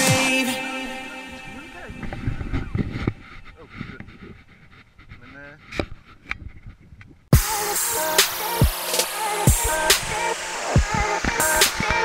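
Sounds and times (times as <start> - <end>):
electronic music: 0.0 - 3.4, 7.3 - 12.0.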